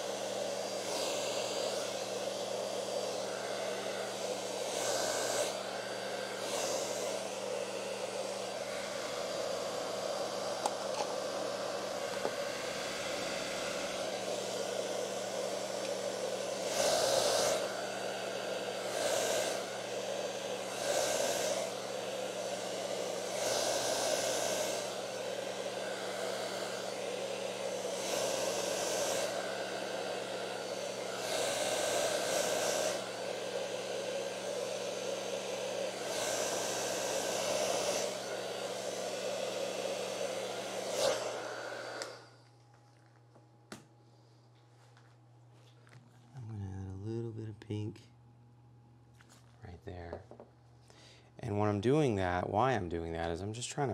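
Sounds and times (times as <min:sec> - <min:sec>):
hair dryer blowing: 0:00.0 - 0:42.8, 0:51.0 - 0:53.9.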